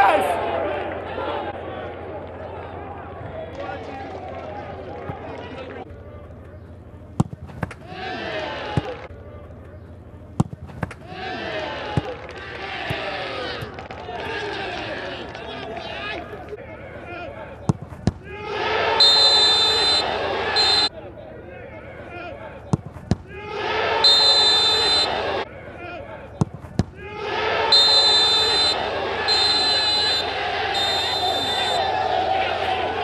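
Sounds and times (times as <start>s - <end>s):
players shouting: 0.0s - 33.0s
thud of ball: 10.4s - 11.0s, 26.4s - 27.0s
football kicked hard: 26.4s - 27.0s.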